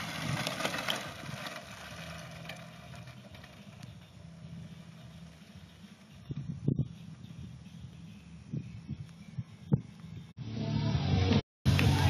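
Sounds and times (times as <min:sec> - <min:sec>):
bike tyres crunching on gravel: 0:00.0 - 0:06.4.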